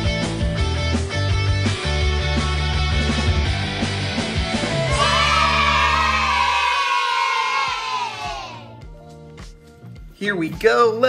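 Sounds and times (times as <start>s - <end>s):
crowd cheer: 4.8s - 8.7s.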